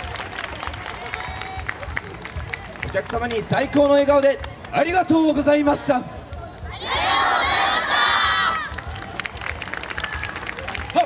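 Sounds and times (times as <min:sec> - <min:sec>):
scattered applause: 0:00.0 - 0:04.8, 0:06.5 - 0:11.0.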